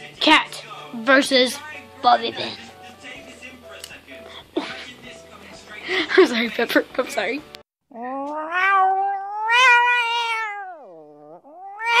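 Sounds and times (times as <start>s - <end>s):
cat yowling: 7.9s - 12.0s.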